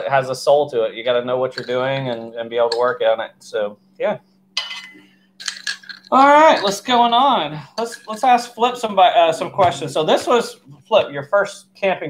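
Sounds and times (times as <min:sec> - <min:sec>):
metal spoon clinking in mug: 0:01.6 - 0:02.8, 0:04.6 - 0:06.8, 0:07.8 - 0:08.2.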